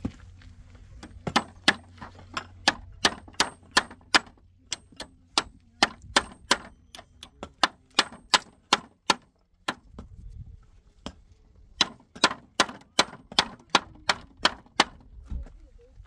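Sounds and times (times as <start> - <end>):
hammer striking nails: 1.0 - 9.8, 11.8 - 15.0.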